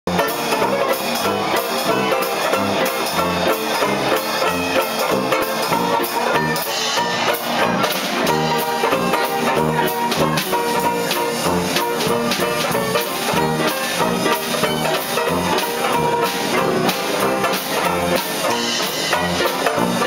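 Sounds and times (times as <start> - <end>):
banjo strumming chords: 0.1 - 20.0
drum kit: 0.1 - 20.0
piano: 0.1 - 20.0
tuba bass line: 0.1 - 20.0.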